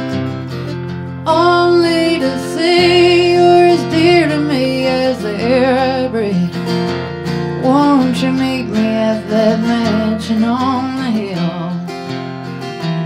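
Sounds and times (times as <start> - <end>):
acoustic guitar: 0.0 - 13.0
woman singing: 1.3 - 6.7, 7.5 - 12.0.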